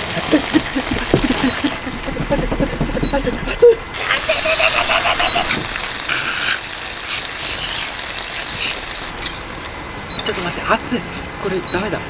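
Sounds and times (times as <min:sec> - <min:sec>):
hot oil spitting: 0:00.0 - 0:09.6
meat sizzling in oil: 0:04.0 - 0:09.3.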